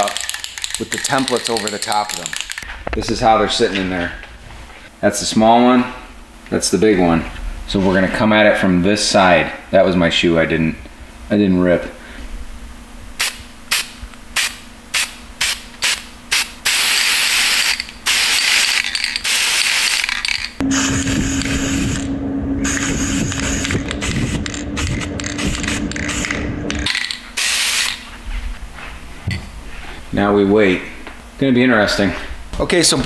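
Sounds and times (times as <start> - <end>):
steady low hum: 0.0 - 33.0
spray paint can hissing: 13.2 - 20.0, 27.4 - 28.0.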